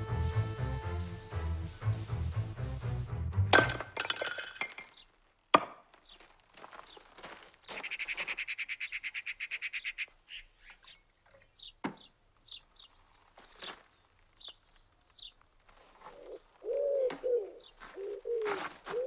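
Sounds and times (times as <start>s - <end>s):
wood pieces clattering: 3.6s - 7.6s
axe splitting firewood: 5.5s - 6.0s
bird chirps: 6.0s - 15.4s, 16.0s - 18.6s.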